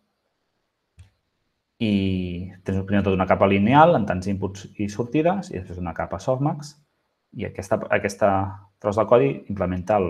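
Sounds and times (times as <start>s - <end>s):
man speaking: 1.8s - 10.0s.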